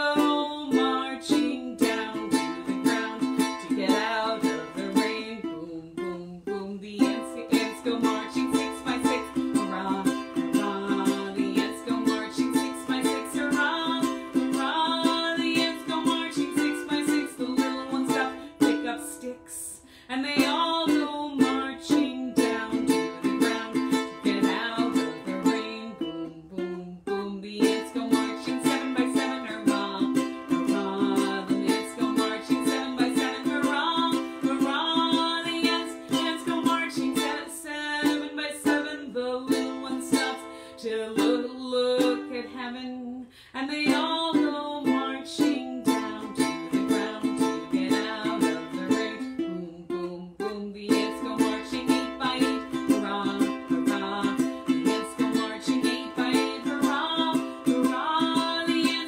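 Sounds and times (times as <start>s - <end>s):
ukulele strummed and picked: 0.0s - 59.0s.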